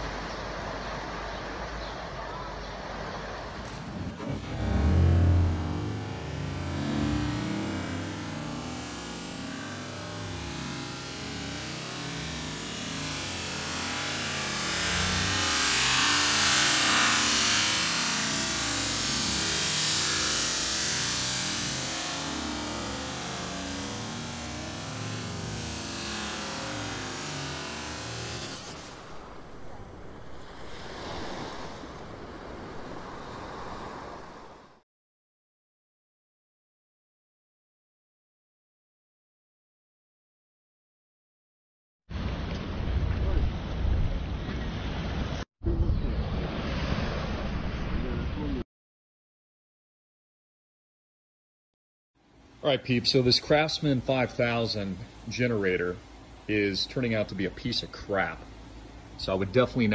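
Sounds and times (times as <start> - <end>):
ocean waves washing ashore: 0.0 - 34.8.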